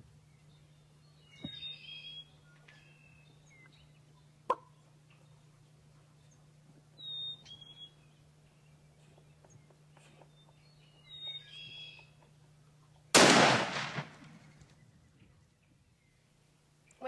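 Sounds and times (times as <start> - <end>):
shotgun shot: 13.2 - 14.6.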